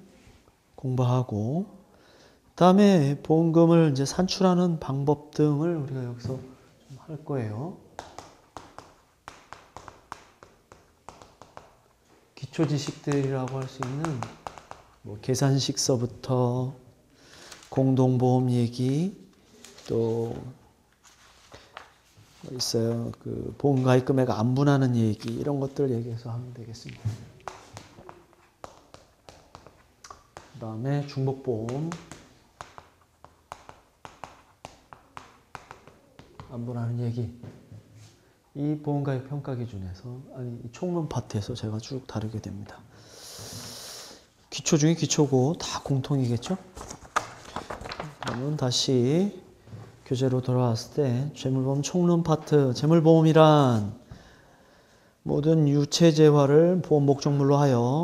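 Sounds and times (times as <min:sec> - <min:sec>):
chalk tapping and scratching: 0:07.9 - 0:15.0, 0:26.8 - 0:36.6.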